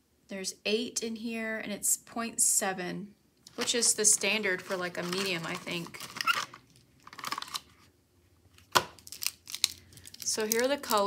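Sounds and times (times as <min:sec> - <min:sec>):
paper rustling: 0:03.5 - 0:07.9
plastic pens rattling and clicking: 0:04.6 - 0:07.6, 0:09.0 - 0:11.0.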